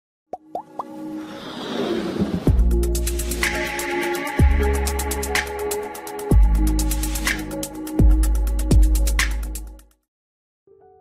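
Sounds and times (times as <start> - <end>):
rising whoosh: 1.1 - 3.2.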